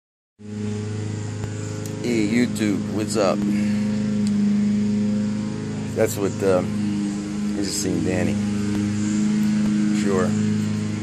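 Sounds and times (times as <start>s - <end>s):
steady mechanical hum: 0.4s - 11.0s.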